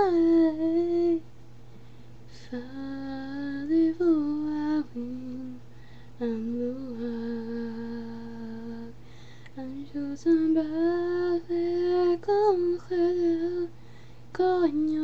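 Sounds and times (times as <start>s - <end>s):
young woman singing unaccompanied: 0.0s - 1.3s, 2.3s - 15.0s.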